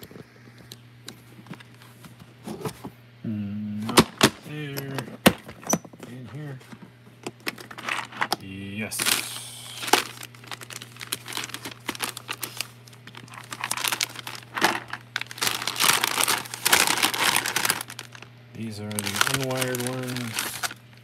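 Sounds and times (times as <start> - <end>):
plastic bags crinkling: 8.9 - 21.0.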